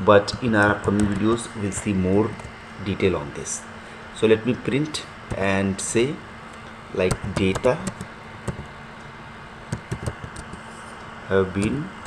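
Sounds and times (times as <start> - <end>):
steady background hum: 0.0 - 12.0
keyboard key clicks: 7.1 - 8.7, 9.7 - 10.6.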